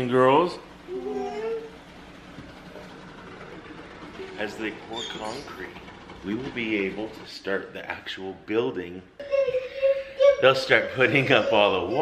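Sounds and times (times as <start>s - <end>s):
faint steady background hum: 0.0s - 12.0s.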